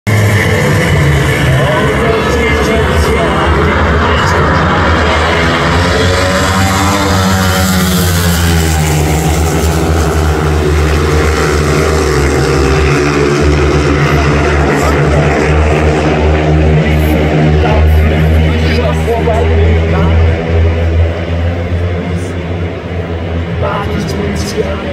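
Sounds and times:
speedway motorcycles racing: 0.1s - 24.9s.

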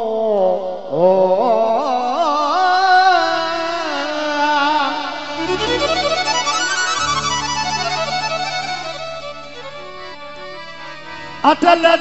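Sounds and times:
harmonium drone: 2.1s - 12.0s
keyboard melody: 5.2s - 12.0s.

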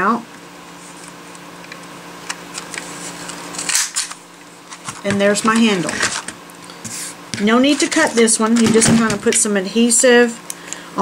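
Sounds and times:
paper rustling: 2.3s - 9.5s.

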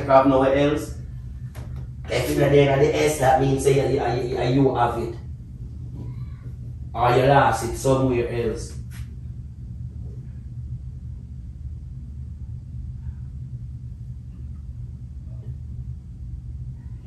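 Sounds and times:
steady low rumble: 0.0s - 17.0s.

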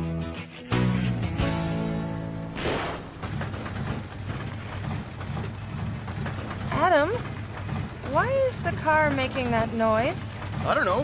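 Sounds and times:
cartoon car engine clanking: 2.0s - 11.0s.

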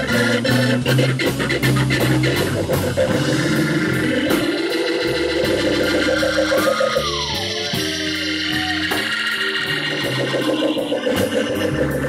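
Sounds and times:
electric guitar: 0.0s - 12.0s
live blues band playing: 0.0s - 12.0s
organ tones: 0.0s - 12.0s.

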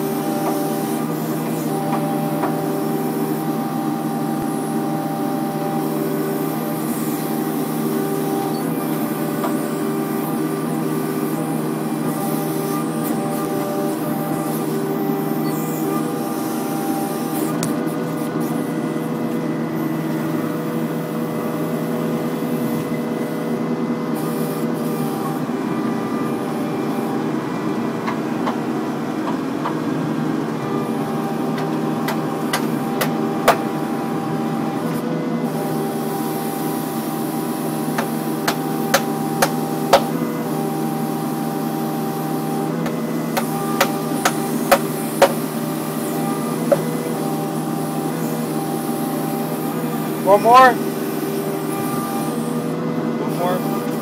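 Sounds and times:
excavator diesel engine running: 0.0s - 54.0s.

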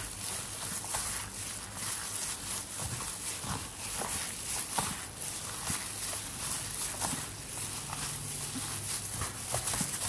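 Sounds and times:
plastic glove rustling: 0.0s - 10.0s
wet squelching of mixing: 0.0s - 10.0s.

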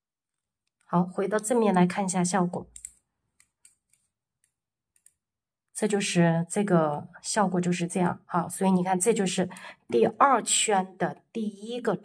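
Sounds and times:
woman speaking: 0.9s - 2.8s, 5.8s - 12.0s
knitting needles clicking: 2.5s - 5.3s.

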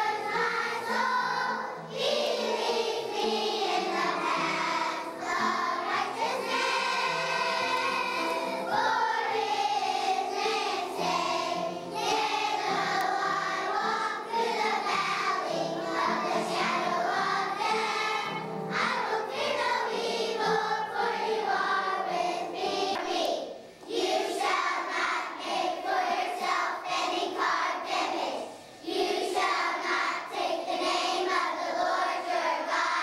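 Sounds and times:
children's choir singing: 0.0s - 33.0s.

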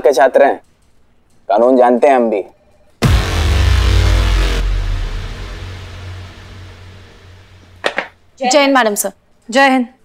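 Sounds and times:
dramatic music sting: 3.0s - 7.8s
low rumble: 3.0s - 7.8s
deep boom: 3.0s - 8.2s.

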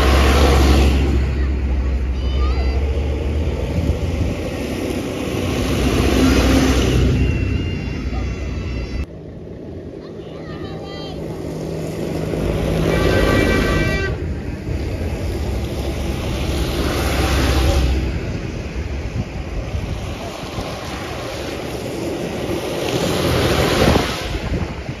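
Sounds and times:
tyres hissing on wet road: 0.0s - 7.2s, 10.0s - 25.0s
tractor engine: 0.0s - 25.0s
vehicles passing: 0.0s - 25.0s
horn toot: 12.7s - 14.4s.

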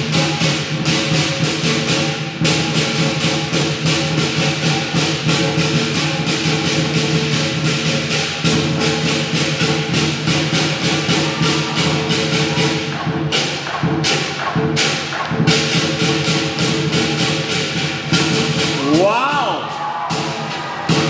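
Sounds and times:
lion dance percussion ensemble: 0.0s - 21.0s.

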